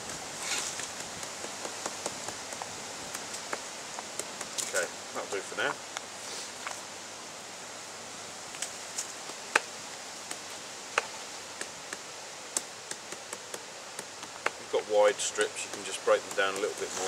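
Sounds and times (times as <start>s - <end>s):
outdoor background hiss: 0.0s - 17.0s.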